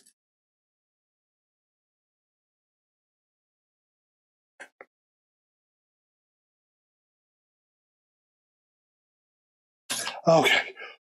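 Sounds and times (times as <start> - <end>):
spoken word: 9.9 - 10.8.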